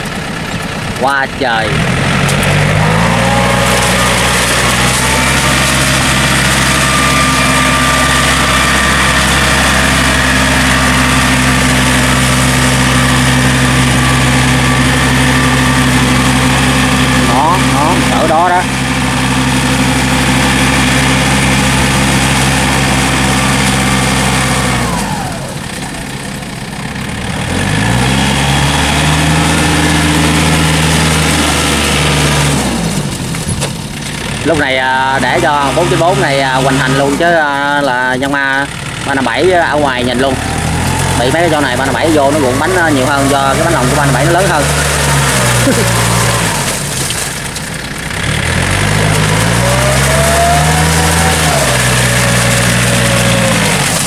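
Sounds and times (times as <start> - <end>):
tractor diesel engine under load: 0.0 - 54.0
wheels churning through mud: 0.0 - 54.0.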